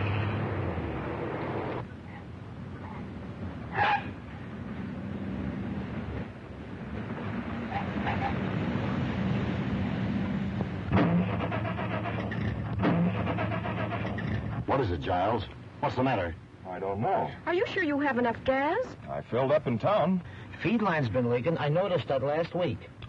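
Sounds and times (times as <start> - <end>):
car engine running: 9.4 - 14.8
engine coughing: 10.9 - 14.6.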